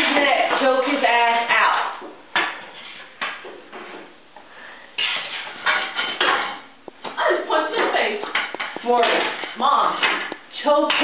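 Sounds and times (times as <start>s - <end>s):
hard objects knocking and clattering: 5.0s - 11.0s.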